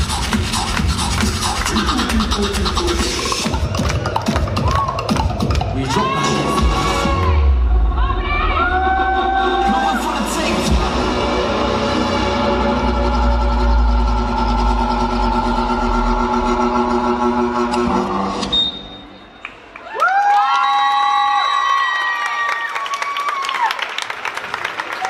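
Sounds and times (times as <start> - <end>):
dance track with heavy bass: 0.0 - 8.4
audience applause: 19.4 - 25.0
audience cheering: 19.6 - 25.0.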